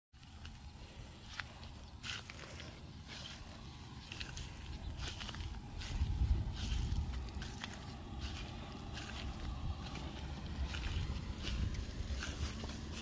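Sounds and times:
steady low rumble: 0:00.2 - 0:13.0.

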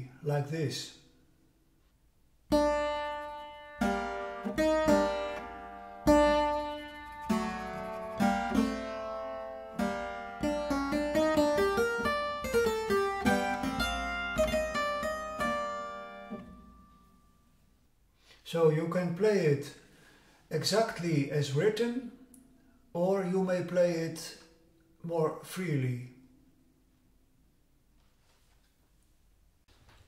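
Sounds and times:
clavichord playing slow piece: 0:02.5 - 0:17.1.

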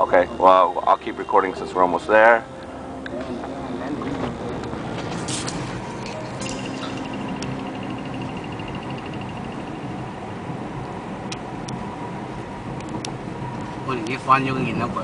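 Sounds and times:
road and engine noise in car cabin: 0:00.0 - 0:15.0
rapid high ticking: 0:05.5 - 0:11.8.

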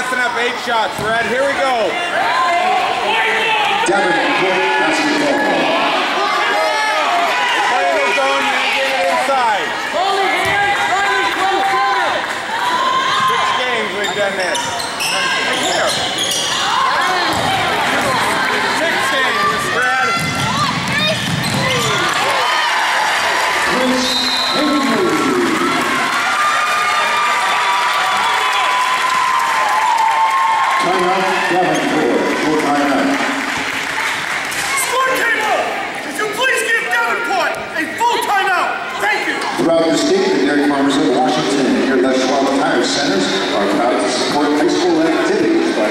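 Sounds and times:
basketball bouncing: 0:20.1 - 0:22.2.

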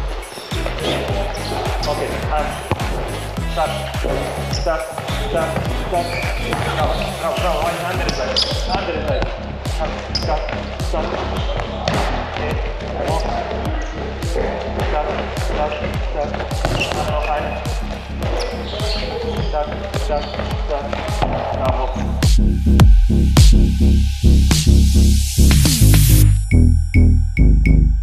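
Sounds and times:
background music: 0:00.0 - 0:28.0
bass-heavy electronic music: 0:00.0 - 0:28.0
balls smacking on wooden floor: 0:07.6 - 0:13.8, 0:14.4 - 0:21.8.

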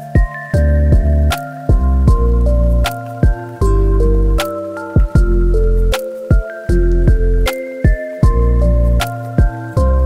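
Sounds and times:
sharp percussive beat: 0:00.0 - 0:03.7, 0:04.4 - 0:05.4, 0:06.0 - 0:09.6
held synth notes: 0:00.0 - 0:10.0.

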